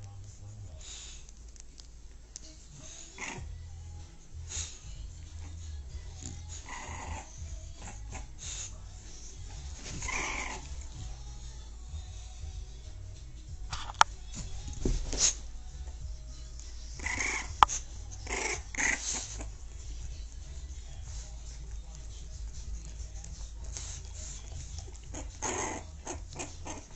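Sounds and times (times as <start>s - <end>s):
dog vocalizing: 2.8s - 3.6s, 4.4s - 11.2s, 16.8s - 26.9s
steady low rumble: 3.4s - 6.6s, 15.4s - 26.4s
pet animal crying: 10.0s - 10.9s, 17.0s - 19.6s, 24.9s - 26.9s.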